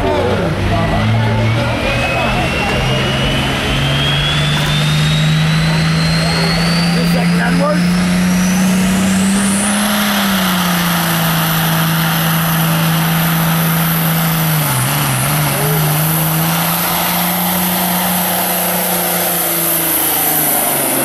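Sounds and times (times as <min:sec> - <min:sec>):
high-pitched whine: 0:00.0 - 0:21.0
truck engine under load: 0:00.0 - 0:21.0.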